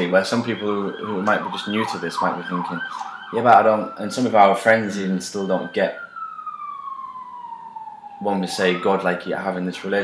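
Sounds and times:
siren with falling pitch: 0.0s - 10.0s.

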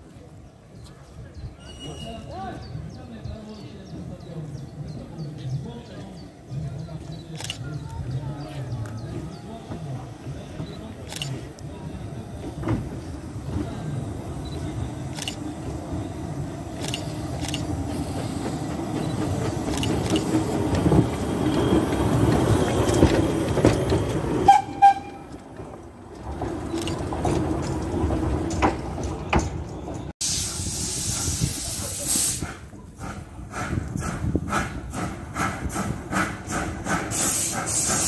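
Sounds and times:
steam locomotive passing: 1.2s - 38.0s
hissing steam: 30.2s - 38.0s.

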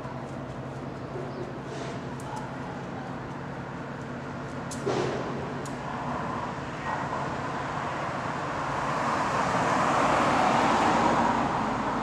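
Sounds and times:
low hum of traffic: 0.0s - 12.0s.

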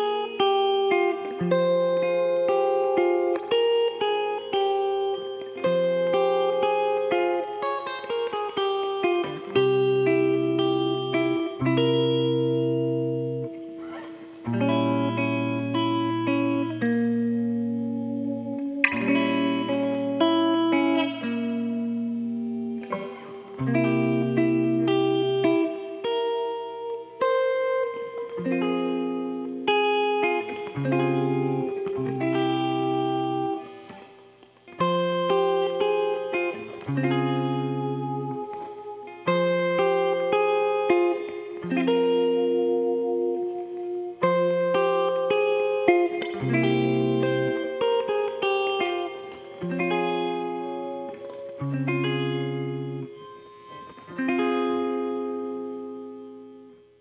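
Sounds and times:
guitar with effects: 0.0s - 57.0s.

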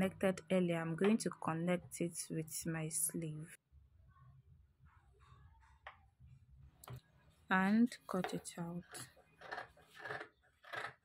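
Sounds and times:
scissors cutting fabric: 8.2s - 11.0s.

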